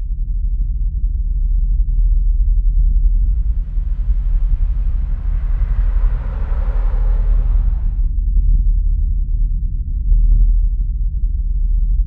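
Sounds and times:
deep low rumble: 0:02.8 - 0:08.8
hissing swell: 0:03.0 - 0:08.1.

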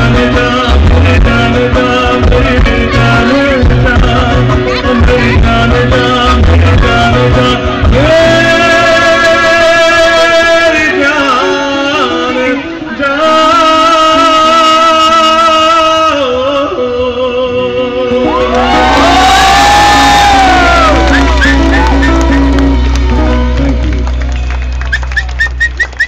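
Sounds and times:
deep bass: 0:00.0 - 0:10.5, 0:18.2 - 0:26.0
electric guitar: 0:17.6 - 0:26.0
crowd whooping and cheering: 0:18.2 - 0:26.0
people clapping: 0:18.5 - 0:26.0.

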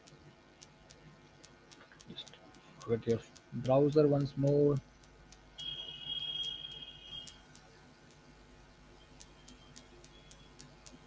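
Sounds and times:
faint clicks: 0:00.0 - 0:05.7, 0:06.4 - 0:08.3, 0:09.2 - 0:11.0.

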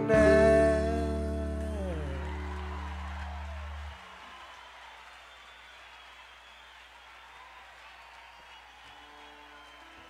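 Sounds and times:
faint crowd applause: 0:00.8 - 0:10.0.

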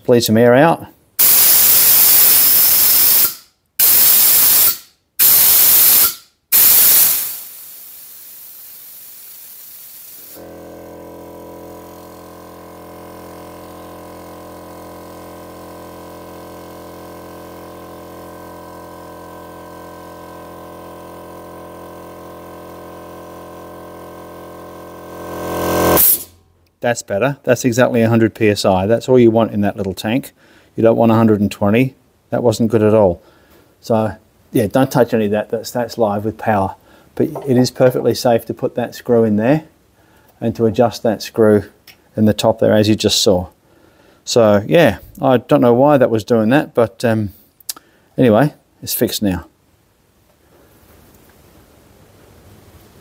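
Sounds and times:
compressed air hissing: 0:01.2 - 0:10.6, 0:26.0 - 0:26.4
compressor motor and pump running: 0:01.2 - 0:26.4, 0:37.2 - 0:38.2.

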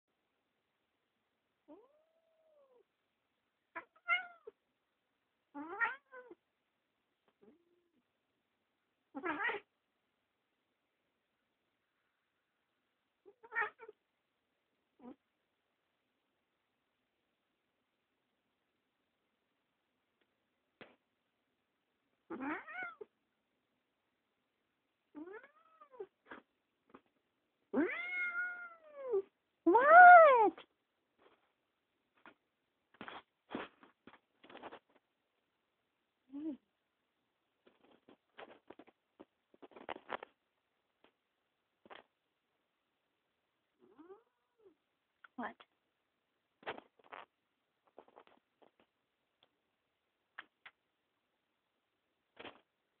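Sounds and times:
cat meowing and yowling: 0:01.7 - 0:02.8, 0:03.8 - 0:04.6, 0:05.6 - 0:06.4, 0:09.2 - 0:09.7, 0:13.3 - 0:14.0, 0:22.3 - 0:23.1, 0:25.2 - 0:26.1, 0:27.7 - 0:30.6.

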